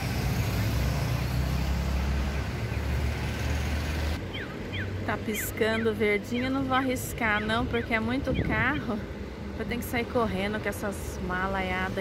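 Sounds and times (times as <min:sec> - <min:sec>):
low engine rumble: 0:00.0 - 0:12.0.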